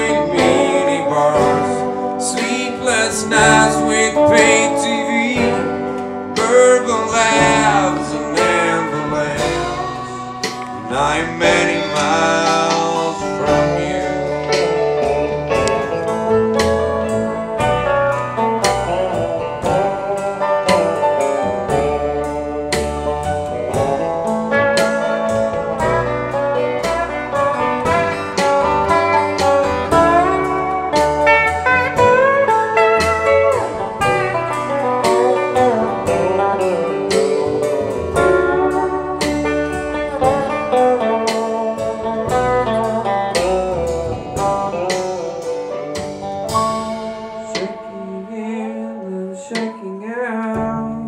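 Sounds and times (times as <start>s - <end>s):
lap steel guitar solo: 0.0s - 49.2s
band playing rhythm: 0.0s - 51.0s.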